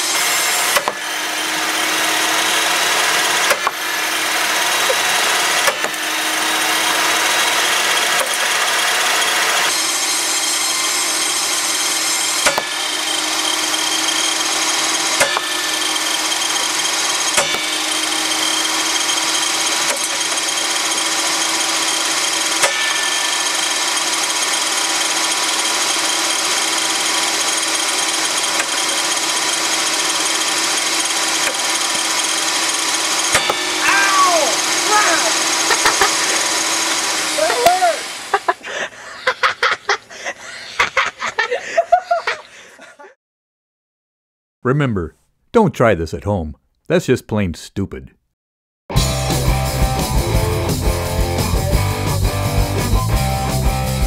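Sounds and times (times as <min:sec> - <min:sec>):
table saw motor whine: 0:00.0 - 0:39.8, 0:48.9 - 0:54.0
wood blocks cracking on blade: 0:00.1 - 0:01.2, 0:02.0 - 0:09.6, 0:12.3 - 0:12.8, 0:15.0 - 0:20.8, 0:28.1 - 0:33.9.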